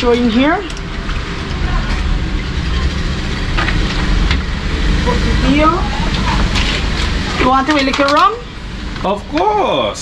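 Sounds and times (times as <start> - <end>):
steady low rumbling: 0.0 - 10.0.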